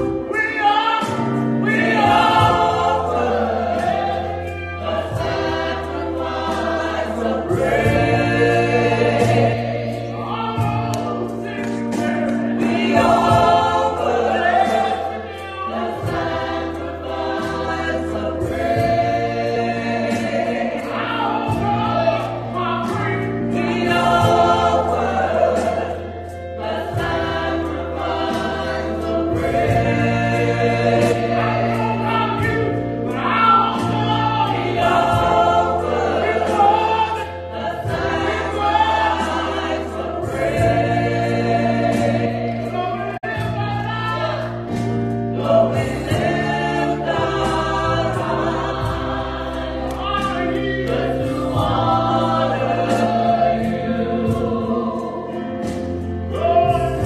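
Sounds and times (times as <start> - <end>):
gospel choir singing: 0.0 - 57.0
piano: 0.0 - 57.0.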